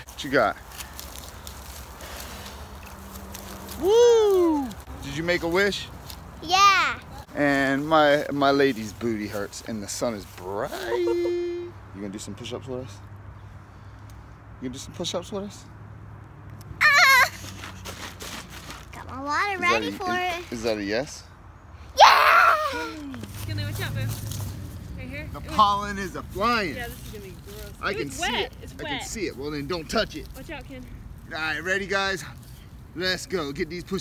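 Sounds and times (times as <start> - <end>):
faint background noise: 0.0 - 34.0
girl shouting: 6.4 - 7.2, 16.8 - 17.5, 19.0 - 20.4, 21.9 - 23.2.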